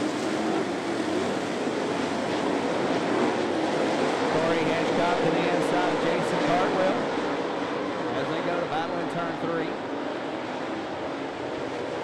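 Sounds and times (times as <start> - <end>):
race car engines droning: 0.6 - 12.0.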